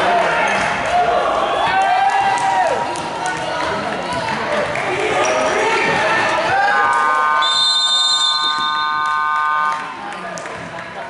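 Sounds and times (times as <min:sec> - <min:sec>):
crowd voices: 0:00.0 - 0:11.0
scoreboard buzzer tone: 0:06.6 - 0:09.9.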